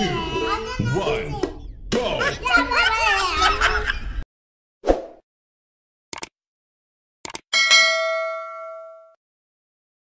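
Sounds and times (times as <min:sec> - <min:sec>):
bell ding: 0:07.6 - 0:09.2.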